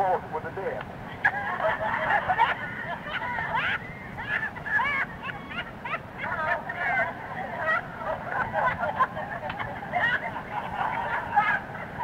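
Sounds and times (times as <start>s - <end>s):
passengers laughing: 0.0s - 12.0s.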